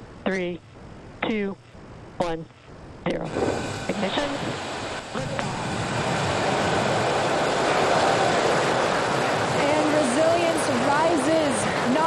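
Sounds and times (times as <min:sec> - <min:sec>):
rocket engines roaring: 0:03.1 - 0:12.0.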